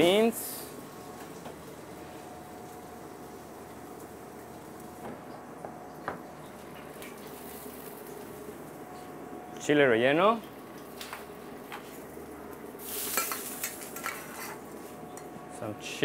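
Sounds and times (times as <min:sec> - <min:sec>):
kitchen background hum: 0:00.0 - 0:16.0.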